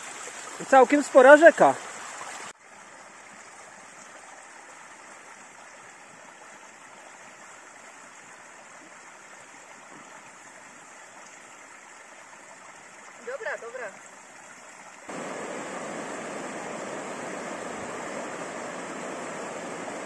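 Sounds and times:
spring water flowing into trough: 0:14.0 - 0:20.0.

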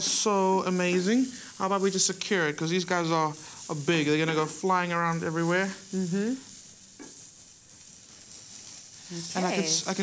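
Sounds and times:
frying pan sizzling: 0:00.0 - 0:10.0.

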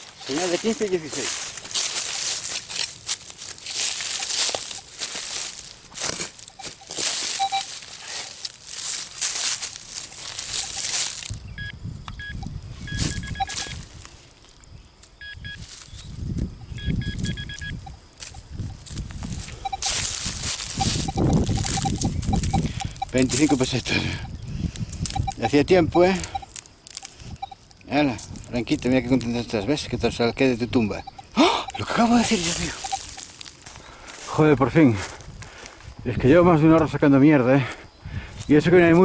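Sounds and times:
metal detector beeps: 0:00.0 - 0:01.2, 0:03.8 - 0:05.0, 0:06.4 - 0:07.8, 0:10.3 - 0:13.9, 0:15.2 - 0:16.0, 0:16.6 - 0:18.8, 0:19.5 - 0:24.4, 0:25.0 - 0:27.9, 0:30.6 - 0:33.3
soil being handled: 0:00.0 - 0:11.4.

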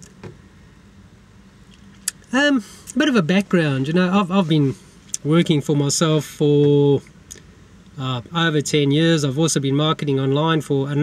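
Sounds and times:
car cabin hum: 0:00.0 - 0:11.0.

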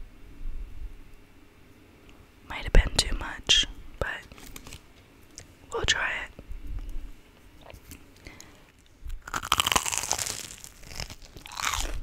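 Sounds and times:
woman whispering: 0:02.5 - 0:04.3, 0:05.7 - 0:06.4.

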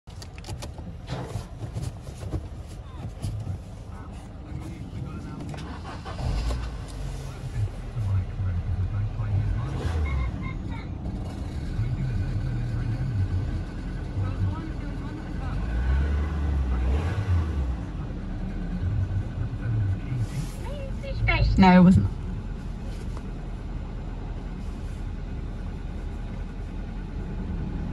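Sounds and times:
car engine idling: 0:00.0 - 0:27.9.

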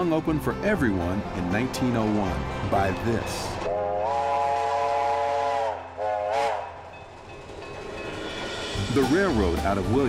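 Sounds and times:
approaching train running: 0:00.0 - 0:10.0
steam train chime whistle: 0:03.7 - 0:06.9.

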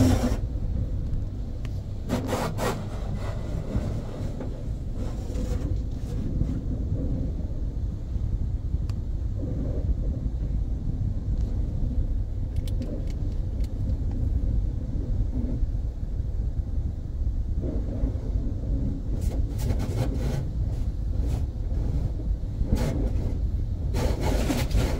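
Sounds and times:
muffled car wash rumble: 0:00.0 - 0:24.9.

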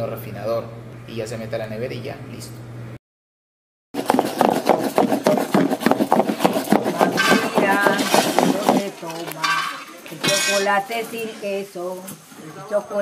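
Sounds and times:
utensil knocking against pot: 0:06.7 - 0:08.8.

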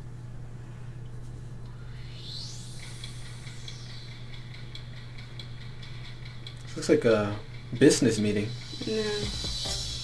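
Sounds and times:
steady low hum: 0:00.0 - 0:10.0
whoosh rising and falling in pitch: 0:01.7 - 0:05.0.

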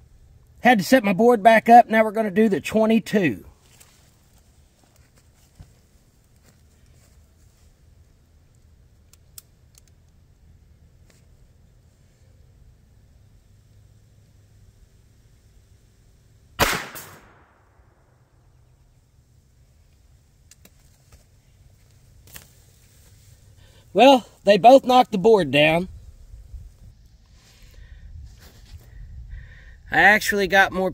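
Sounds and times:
pistol shot: 0:16.6 - 0:17.9.

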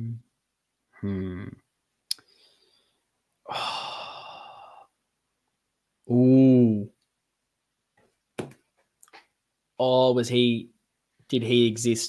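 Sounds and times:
man sighing: 0:01.0 - 0:01.6, 0:03.4 - 0:05.0.

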